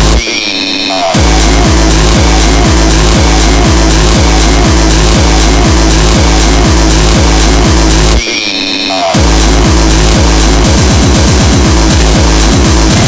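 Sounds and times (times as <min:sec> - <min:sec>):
distorted kick drum: 0:00.0 - 0:00.3, 0:01.1 - 0:08.3, 0:09.0 - 0:13.0
dense synth layers: 0:00.0 - 0:13.0.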